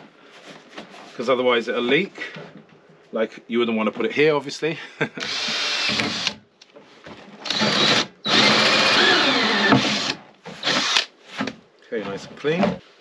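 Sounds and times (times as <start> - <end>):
cordless drill cutting plastic: 5.2 - 6.4, 7.4 - 11.1.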